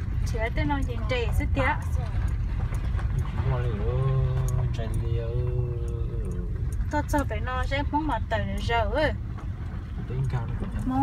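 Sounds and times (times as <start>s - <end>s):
car rumbling from inside: 0.0s - 11.0s.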